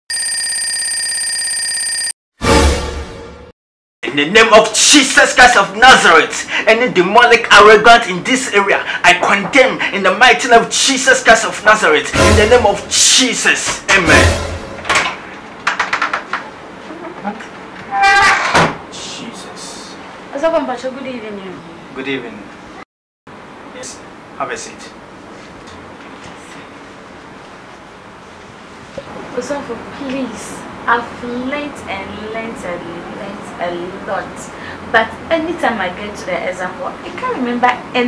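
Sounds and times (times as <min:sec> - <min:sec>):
shrill electronic ringing tone: 0:00.1 - 0:02.2.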